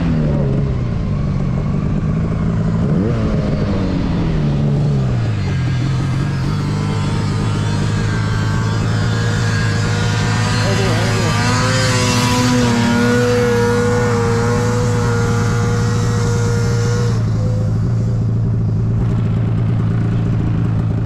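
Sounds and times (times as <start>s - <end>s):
snowmobile engine running: 0.0s - 21.0s
snowmobile passing by: 0.0s - 21.0s.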